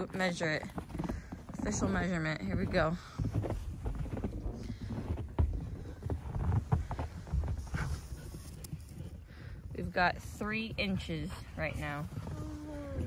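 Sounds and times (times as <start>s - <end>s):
footsteps in snow: 0.2s - 8.4s.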